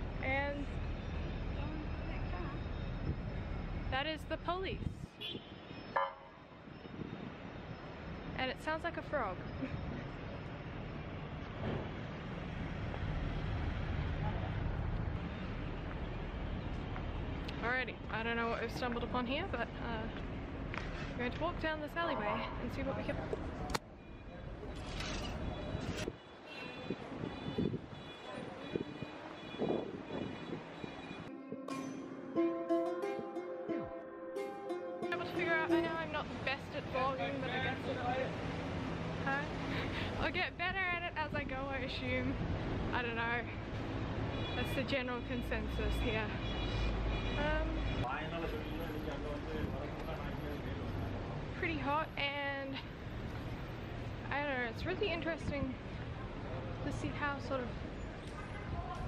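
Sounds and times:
traffic rumble and hiss: 0.0 - 6.0, 6.6 - 31.3, 35.4 - 59.0
street noise: 0.0 - 59.0
plucked-string background music: 31.3 - 36.3.

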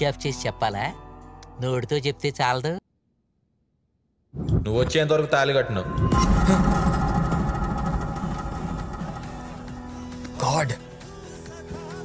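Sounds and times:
low rumble: 5.9 - 9.9.

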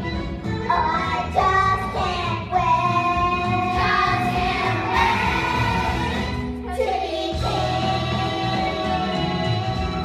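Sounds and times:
musical accompaniment with bass: 0.0 - 10.0
children's chorus singing: 1.2 - 9.6.

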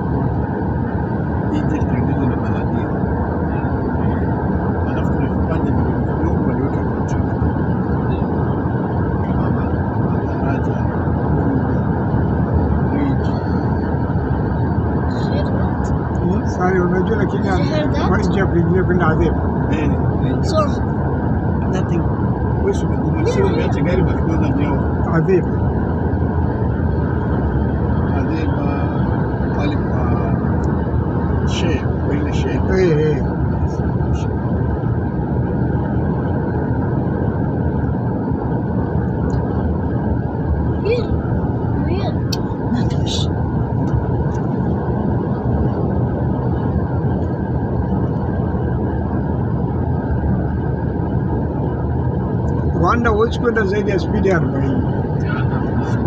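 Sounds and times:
road and engine rumble: 0.0 - 56.0
faint voices: 1.5 - 8.4, 9.2 - 11.8, 15.1 - 20.8, 21.6 - 25.5, 28.1 - 30.4, 31.5 - 34.3, 41.8 - 43.3, 52.8 - 56.0.

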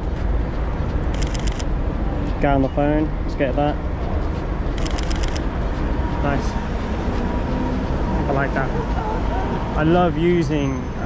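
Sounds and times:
street traffic rumble: 0.0 - 11.0
camera shutter burst: 1.2 - 1.7, 4.8 - 5.4.

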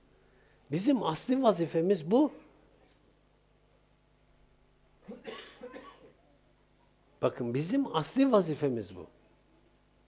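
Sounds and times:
person coughing: 5.0 - 6.2.

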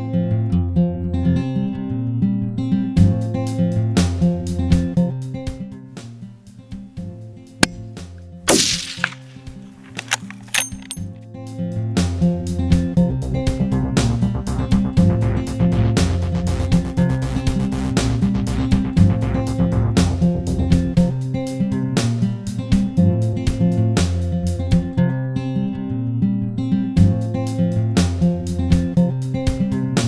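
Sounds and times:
rifle shot: 8.5 - 11.0.

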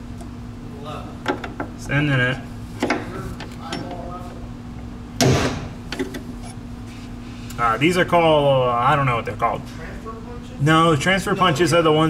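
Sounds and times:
hammer striking metal punch: 5.2 - 6.0.

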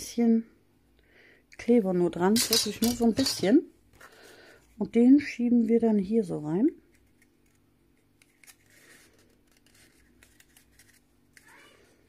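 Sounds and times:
paper rustling and clicking: 7.0 - 11.8.

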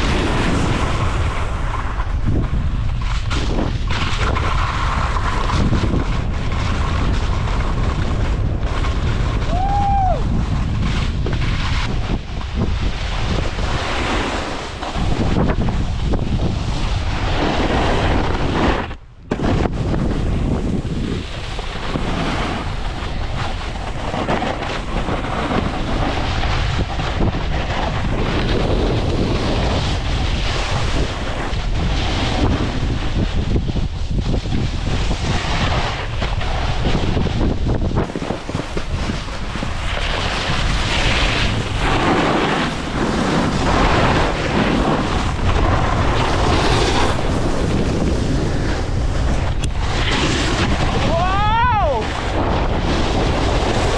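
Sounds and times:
snowboard edges scraping snow: 0.0 - 53.9
wind rushing over microphone: 0.0 - 53.9.

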